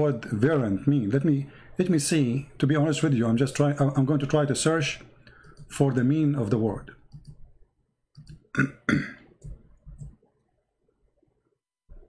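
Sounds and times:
faint low noises: 0.0s - 12.0s
man clearing his throat: 8.5s - 9.3s.

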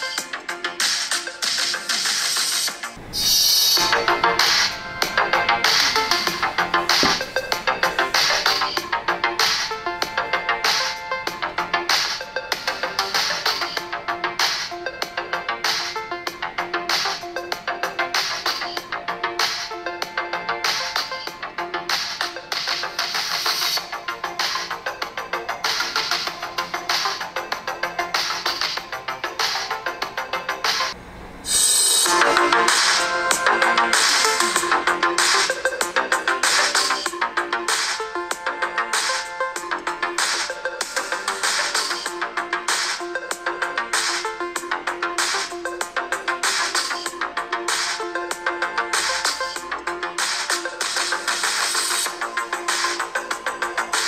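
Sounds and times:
electronic music from phone speaker: 0.0s - 54.0s
louder fuller music: 0.1s - 54.0s.

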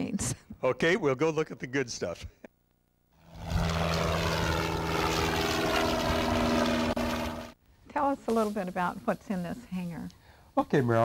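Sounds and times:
propeller airplane engine running: 3.1s - 7.6s.

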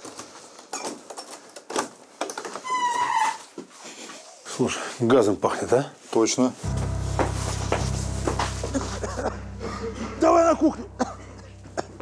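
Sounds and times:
door squeaking open: 2.6s - 3.5s.

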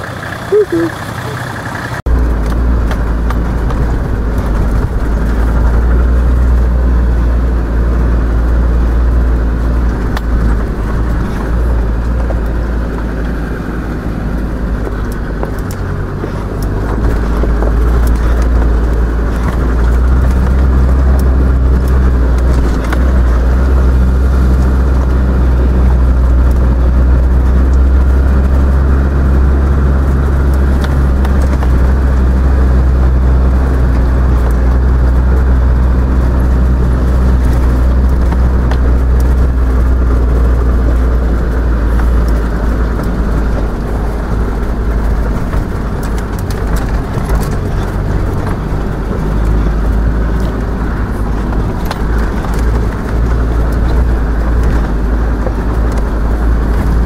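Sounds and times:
engine droning inside vehicle cabin: 0.0s - 57.0s.

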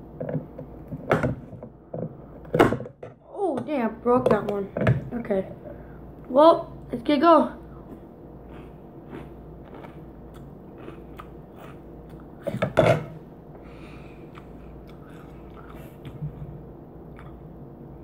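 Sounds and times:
mouth chewing and crunching: 7.9s - 12.7s, 14.2s - 17.6s.

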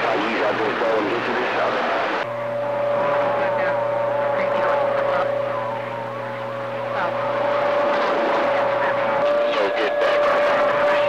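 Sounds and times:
garbled radio voices: 0.0s - 11.0s
radio static hiss and hum: 0.0s - 11.0s
radio whistle tone: 1.0s - 11.0s.

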